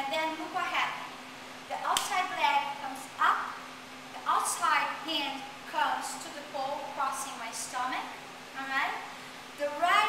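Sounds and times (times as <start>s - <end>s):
woman speaking: 0.0s - 1.1s, 1.7s - 3.6s, 4.2s - 10.0s.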